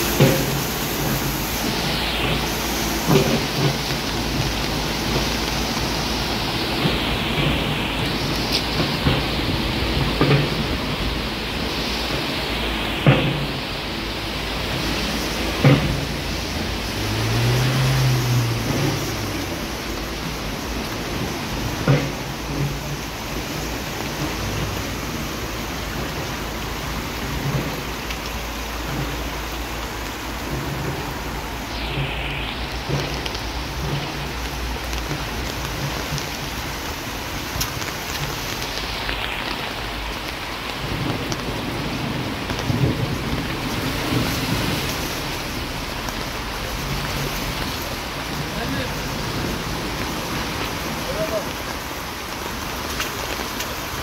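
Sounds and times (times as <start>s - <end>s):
heavy rain hissing: 0.0s - 54.0s
running runoff water: 0.0s - 54.0s.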